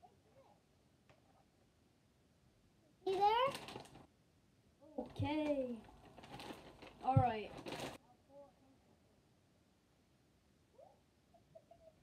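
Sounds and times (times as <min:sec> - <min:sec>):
faint voice-like sounds: 0:00.0 - 0:01.5, 0:08.0 - 0:09.4, 0:10.7 - 0:12.0.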